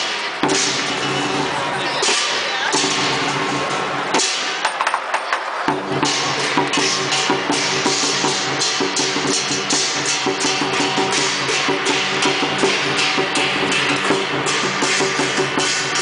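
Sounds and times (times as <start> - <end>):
cymbals crashing: 0.0 - 4.8, 5.7 - 16.0
large drum beaten: 0.4 - 4.4, 5.7 - 16.0.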